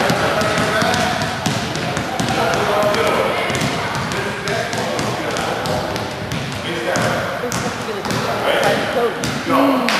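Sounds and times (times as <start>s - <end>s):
basketballs bouncing on hardwood: 0.0s - 9.5s.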